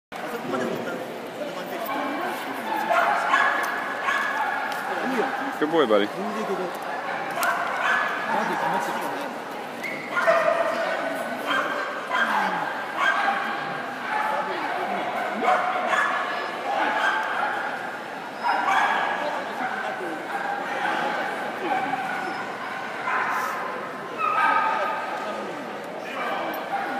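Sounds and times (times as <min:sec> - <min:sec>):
arena noise: 0:00.2 - 0:26.9
dogs barking and yipping: 0:01.9 - 0:05.6, 0:07.0 - 0:09.0, 0:09.9 - 0:14.6, 0:15.2 - 0:24.9
dog yipping: 0:02.8 - 0:04.6.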